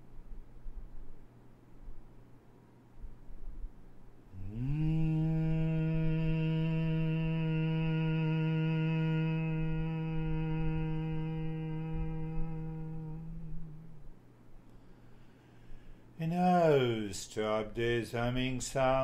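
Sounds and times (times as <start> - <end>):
man humming a steady note: 4.3 - 15.1, 16.1 - 19.0.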